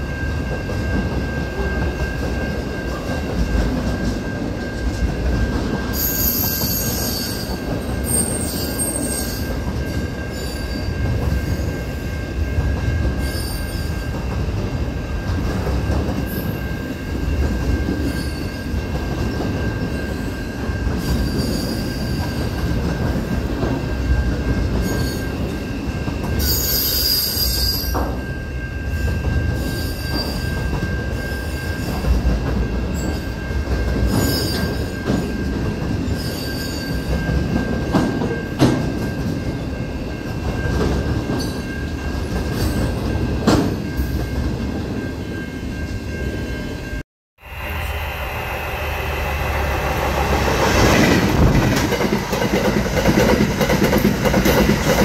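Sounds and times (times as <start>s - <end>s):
freight train rumbling on rails: 0.0s - 55.0s.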